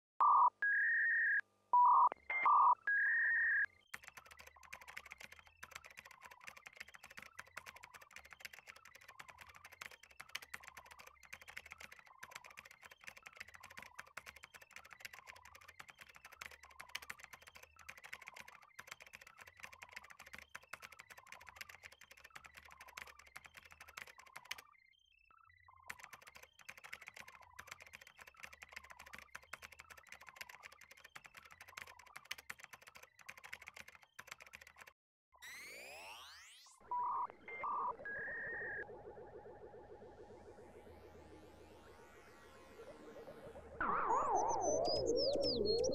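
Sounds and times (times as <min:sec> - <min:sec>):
rapid keyboard typing clicks: 0:03.8 - 0:24.7, 0:25.8 - 0:35.0.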